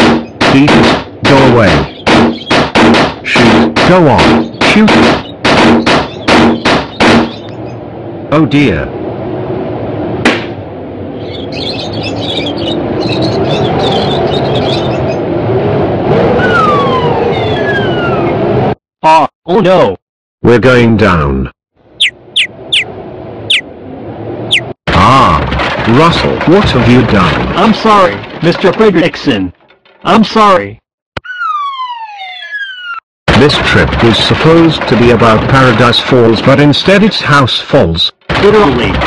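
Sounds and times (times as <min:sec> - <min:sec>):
cartoon bird chirps: 0:22.0 - 0:22.9, 0:23.5 - 0:23.7, 0:31.2 - 0:33.0.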